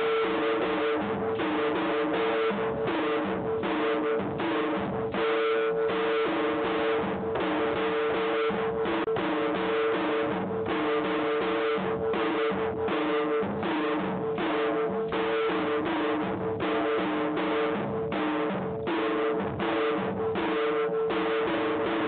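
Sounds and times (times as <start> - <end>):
steady drum beat: 0.0 - 22.0.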